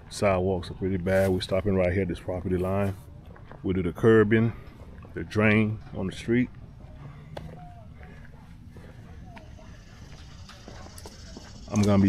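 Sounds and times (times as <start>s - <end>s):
footsteps on concrete: 1.3s - 12.0s.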